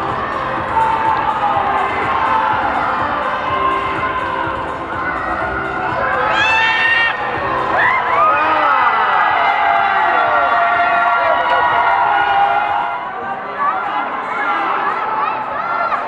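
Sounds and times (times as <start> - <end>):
children shouting and cheering: 0.0 - 16.0.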